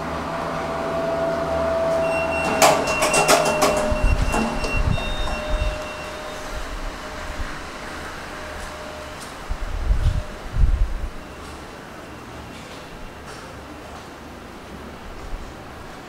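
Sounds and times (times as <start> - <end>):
elevator car humming: 0.0 - 16.0
elevator clicks and clunks: 0.0 - 16.0
elevator doors sliding open: 0.0 - 16.0.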